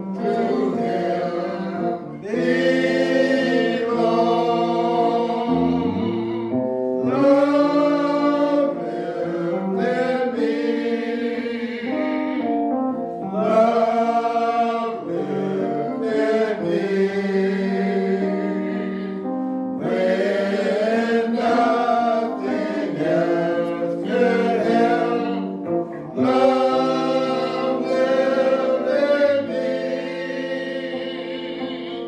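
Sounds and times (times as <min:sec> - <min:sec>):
person singing a slow hymn: 0:00.0 - 0:32.0.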